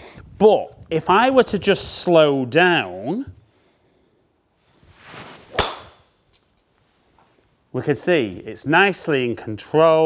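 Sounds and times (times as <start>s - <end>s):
golf club swing whoosh: 4.7s - 6.1s
golf ball impact crack: 5.4s - 6.2s.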